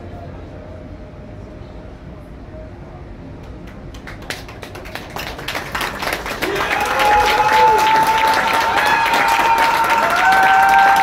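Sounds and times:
audience applauding: 3.9 - 11.0
cheering voices: 6.3 - 11.0.

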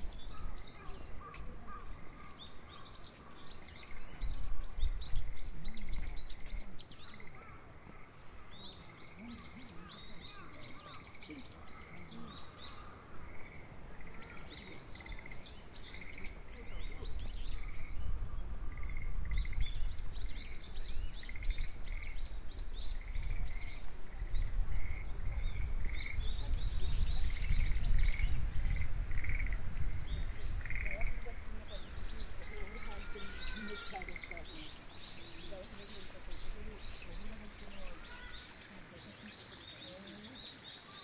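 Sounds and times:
frogs croaking: 7.1 - 16.8, 17.5 - 19.7, 23.0 - 26.3, 28.4 - 41.0.

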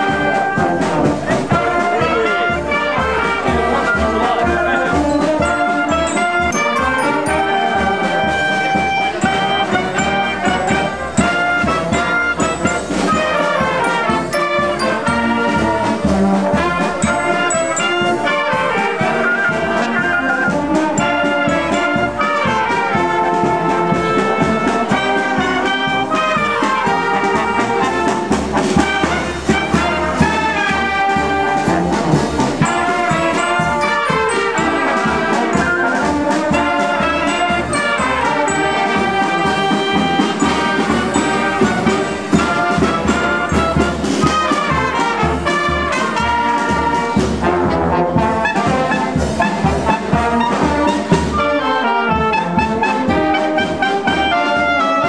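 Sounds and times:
marching band playing: 0.0 - 55.0.

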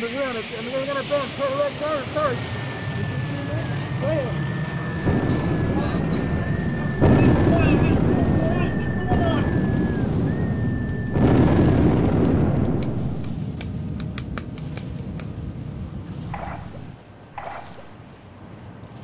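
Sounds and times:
repeating high whistle: 4.8 - 11.8
explosion booms: 5.0 - 17.0
sharp clicks: 12.1 - 15.4.

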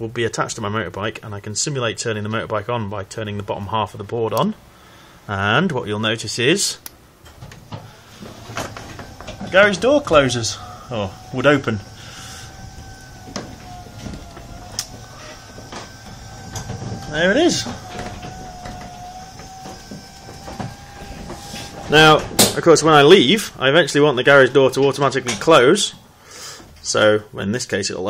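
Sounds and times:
garage door motor humming: 6.9 - 27.0.

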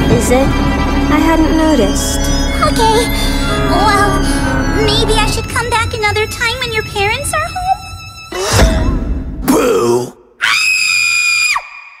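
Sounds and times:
woman screaming: 10.4 - 12.0.

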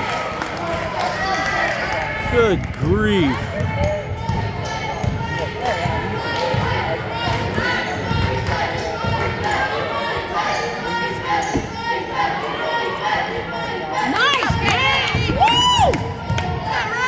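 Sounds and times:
basketball bouncing on gym floor: 3.3 - 9.4.

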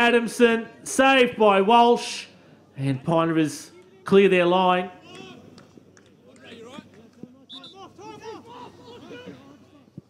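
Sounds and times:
players shouting: 3.7 - 9.9.

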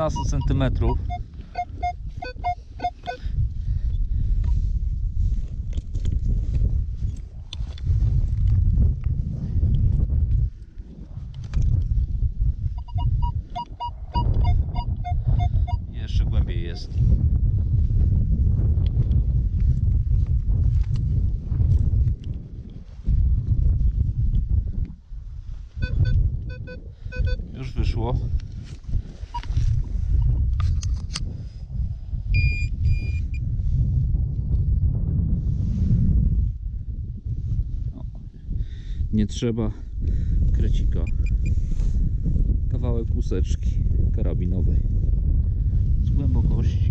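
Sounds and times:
metal detector beep tones: 0.0 - 3.3, 12.8 - 15.9, 25.8 - 27.4, 29.3 - 29.5, 32.4 - 33.4, 41.0 - 41.6
wind rumble on microphone: 0.0 - 46.9.

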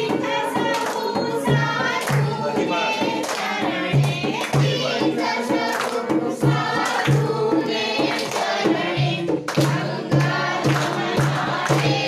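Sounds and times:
group singing devotional song: 0.0 - 12.0
sharp regular beat: 0.0 - 12.0.

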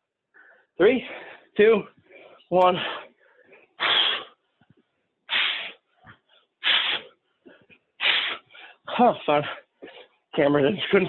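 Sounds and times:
man's sharp forceful exhalations: 3.8 - 4.4, 5.3 - 5.8, 6.6 - 7.1, 8.0 - 8.6.

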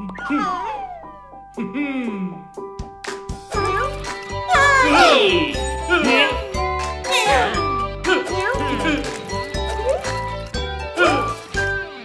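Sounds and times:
light children's music: 0.0 - 12.0
squeaky cartoon voices: 0.2 - 1.1.

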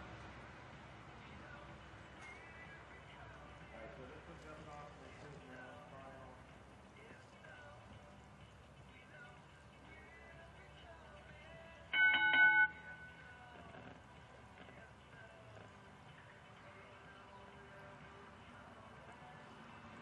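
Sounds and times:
faint background voices: 1.1 - 11.8
electric start bell ringing: 11.9 - 13.4.

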